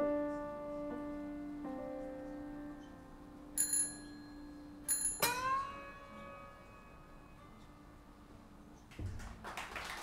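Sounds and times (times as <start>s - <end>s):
piano chord: 0.0s - 8.0s
high bell-like metallic strikes: 3.6s - 7.6s
metallic strike with bending ringing: 3.9s - 7.7s.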